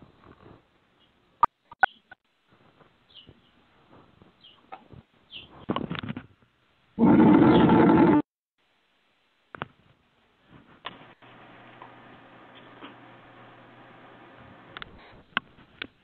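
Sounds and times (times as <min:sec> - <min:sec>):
faint clicks and rustles: 0:14.7 - 0:16.0.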